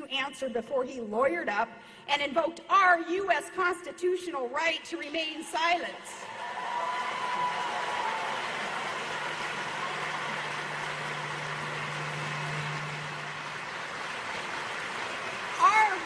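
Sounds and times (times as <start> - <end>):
audience applauding: 6.2 - 16.0.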